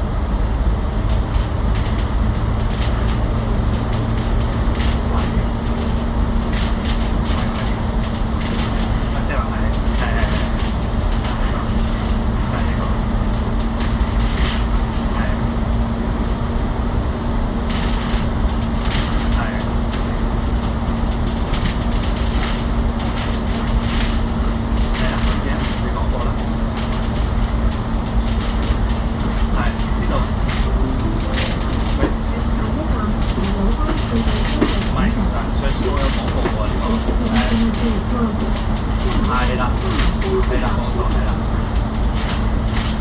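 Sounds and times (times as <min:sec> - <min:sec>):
bus engine drone: 0:00.0 - 0:43.0
road rumble: 0:00.0 - 0:43.0
body rattles and clicks: 0:00.9 - 0:16.5, 0:17.6 - 0:43.0.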